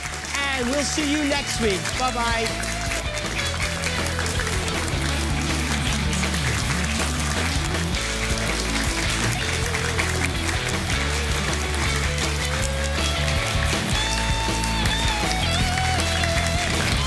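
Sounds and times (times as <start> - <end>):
upbeat theme music with bass line: 0.0 - 17.0.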